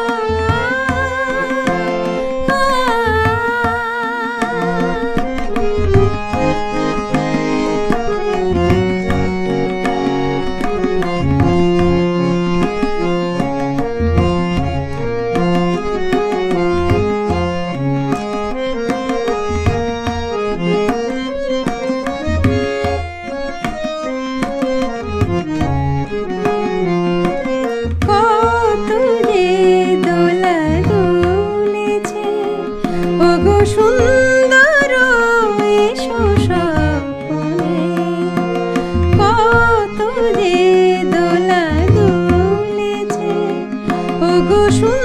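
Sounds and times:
woman singing: 0.0s - 6.5s, 28.0s - 45.0s
reed instrument melody: 0.0s - 45.0s
tabla rhythm: 0.0s - 45.0s.

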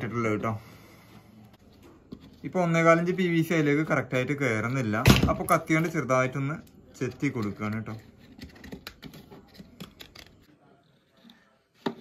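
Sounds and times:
plastic pieces scraping and tapping: 7.1s - 10.5s.

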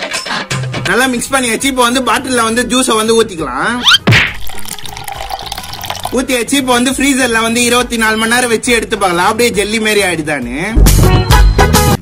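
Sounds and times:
liquid pouring into plastic bottle: 4.4s - 6.3s.

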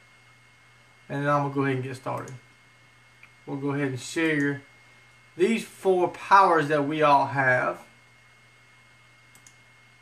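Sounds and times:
faint steady hum: 0.0s - 10.0s
faint quick clicks: 9.3s - 9.6s.

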